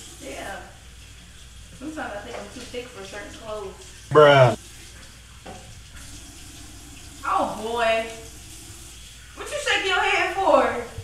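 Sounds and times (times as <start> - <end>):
loud vocal exclamation: 4.1 - 4.6.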